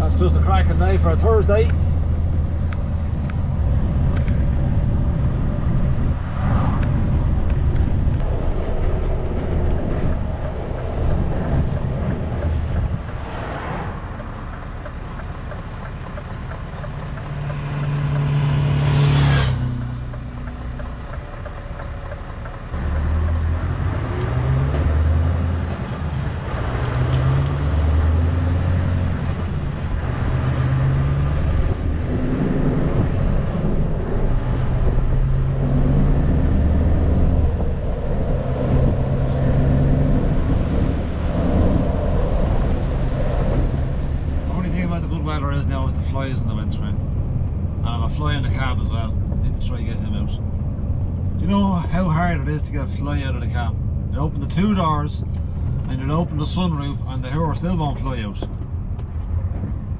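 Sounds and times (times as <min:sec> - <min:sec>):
road noise: 0:00.0 - 0:59.9
truck engine pulling under load: 0:07.2 - 0:51.4.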